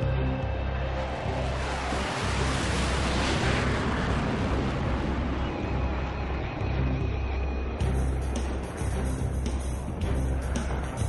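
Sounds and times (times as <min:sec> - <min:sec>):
jet fighters taking off: 0:00.0 - 0:11.0.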